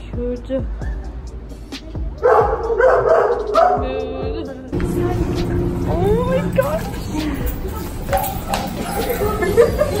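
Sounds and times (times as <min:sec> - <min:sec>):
background music: 0:00.0 - 0:10.0
dogs barking and yipping: 0:02.2 - 0:04.0, 0:05.4 - 0:10.0.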